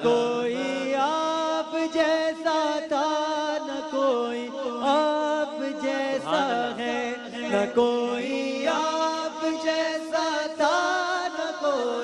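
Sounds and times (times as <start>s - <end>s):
men chanting devotional song: 0.0s - 12.0s.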